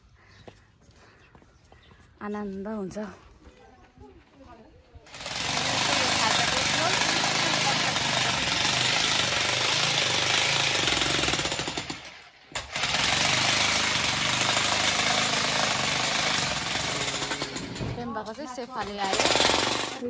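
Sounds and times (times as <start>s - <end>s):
rapid mechanical rattle of machine: 5.1s - 17.8s, 19.1s - 20.0s.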